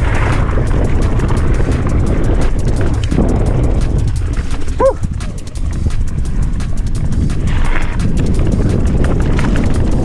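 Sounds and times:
bike rattling and knocking: 0.0 - 10.0
mountain bike rolling on dirt trail: 0.0 - 10.0
rider shouting woo: 4.8 - 5.0.

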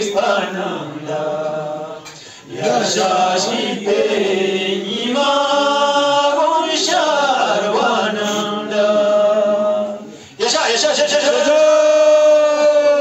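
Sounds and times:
man chanting: 10.4 - 13.0.

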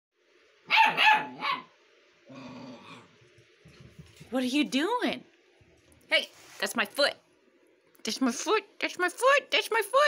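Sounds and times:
puppy barking: 0.7 - 1.8
puppy growling: 2.2 - 3.4.

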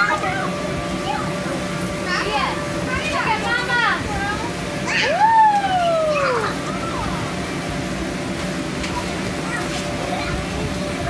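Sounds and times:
air blower humming: 0.0 - 11.0
children shouting and squealing: 4.8 - 7.3
long falling cry: 4.9 - 6.6.

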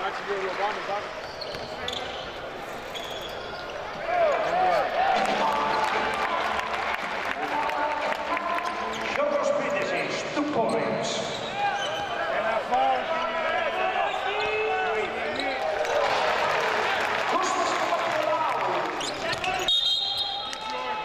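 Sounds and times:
sneakers squeaking: 1.1 - 4.0, 10.5 - 12.4, 13.2 - 15.7, 18.9 - 20.8.

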